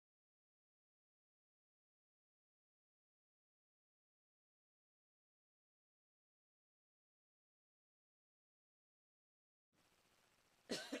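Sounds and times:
person coughing: 10.7s - 11.0s.

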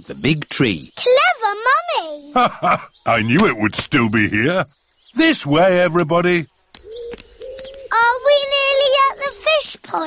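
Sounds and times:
child's sing-song voice: 7.9s - 10.0s.

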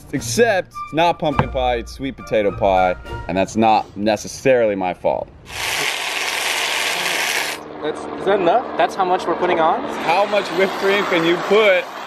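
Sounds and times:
aerosol can spraying hiss: 5.5s - 7.6s.

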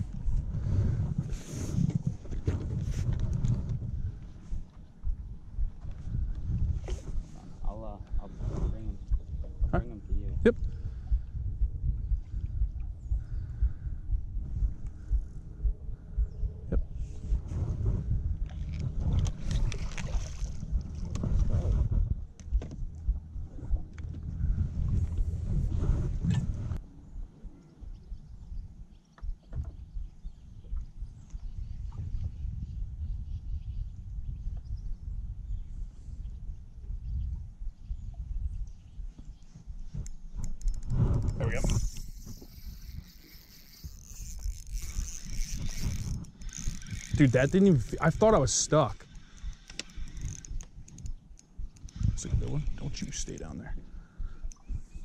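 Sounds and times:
water lapping against boat hull: 0.0s - 26.8s
spinning reel hiss: 41.8s - 47.2s.

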